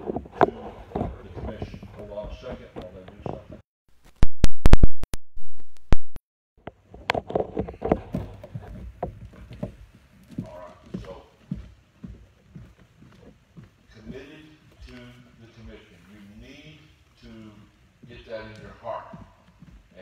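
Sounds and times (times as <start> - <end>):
man's voice through microphone: 13.9 - 19.3.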